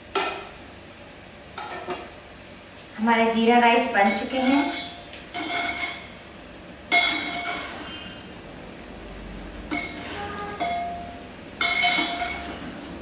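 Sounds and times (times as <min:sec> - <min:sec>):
metal ladle clinking on pot: 0:06.9 - 0:08.0, 0:09.7 - 0:12.7.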